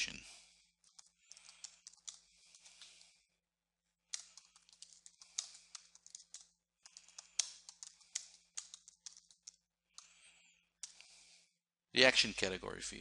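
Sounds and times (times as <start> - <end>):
typing on computer keyboard: 0.8 - 3.1, 4.1 - 10.1.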